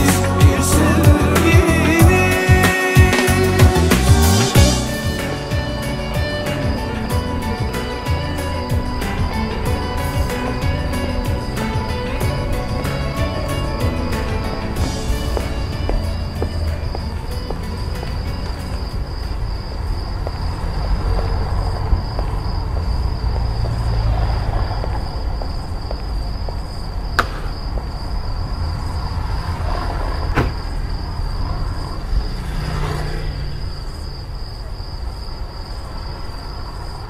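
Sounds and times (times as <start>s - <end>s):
car engine idling: 0.0s - 26.5s.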